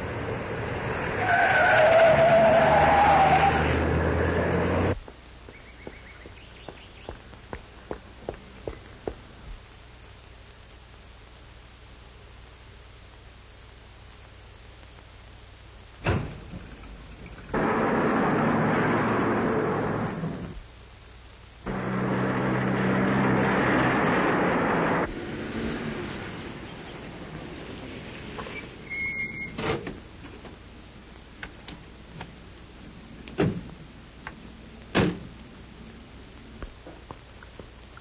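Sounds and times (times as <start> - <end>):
car engines running: 0.0 - 9.6, 16.1 - 20.6, 21.6 - 37.8
tyres squealing: 1.2 - 3.9
sudden thump: 16.0 - 16.6, 34.9 - 35.3.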